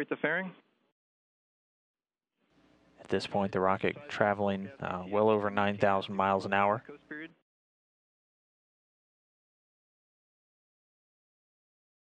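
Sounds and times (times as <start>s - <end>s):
man's voice: 3.0s - 7.4s.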